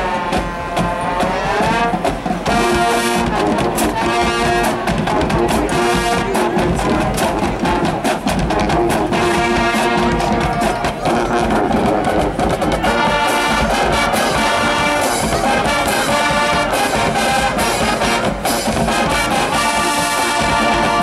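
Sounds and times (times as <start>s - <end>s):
drumline beat: 0.0s - 21.0s
marching band brass: 0.0s - 21.0s.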